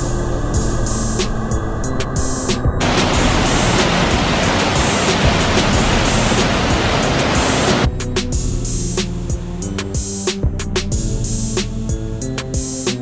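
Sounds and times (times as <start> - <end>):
background music: 0.0 - 13.0
waterfall rushing: 2.2 - 7.9.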